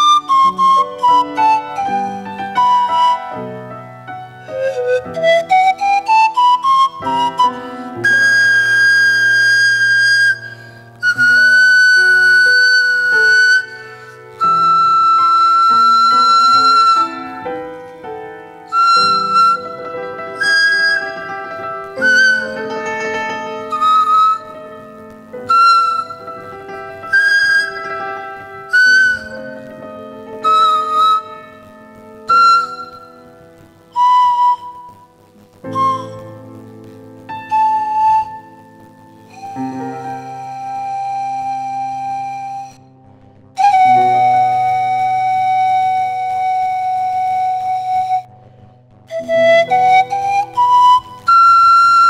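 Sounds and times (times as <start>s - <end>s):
breathy pan flute notes: 0.0s - 43.0s, 43.6s - 52.0s
grand piano chords: 0.0s - 52.0s.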